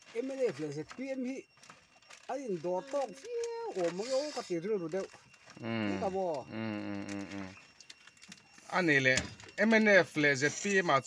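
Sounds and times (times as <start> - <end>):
man talking: 5.6 - 7.6.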